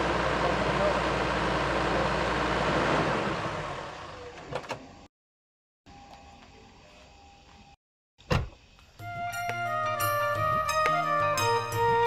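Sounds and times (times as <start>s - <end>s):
car engine running: 0.0s - 4.4s.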